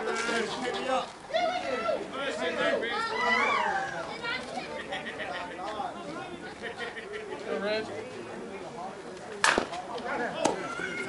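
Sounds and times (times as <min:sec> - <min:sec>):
voices shouting: 0:00.0 - 0:07.3, 0:10.1 - 0:11.0.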